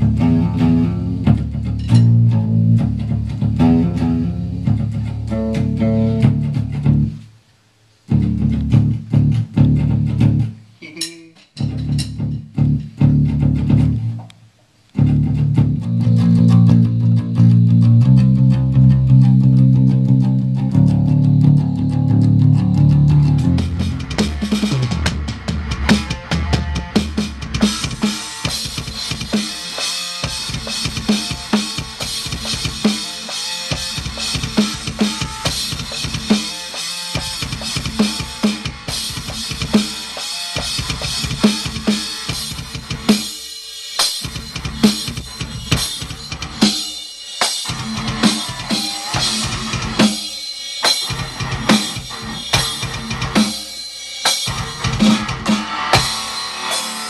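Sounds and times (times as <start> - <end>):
amplified guitar notes and chords: 0.0 - 7.2, 14.9 - 43.3, 47.6 - 50.3, 50.9 - 53.8, 54.4 - 57.0
drum kit played hard: 15.0 - 57.0.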